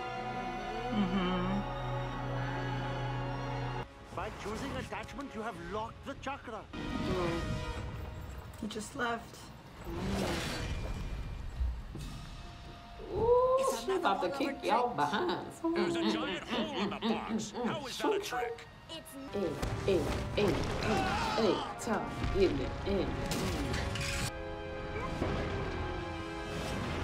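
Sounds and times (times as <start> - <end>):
background music with held notes: 0.0 - 8.6
person's drawn-out vocal sound: 0.9 - 1.7.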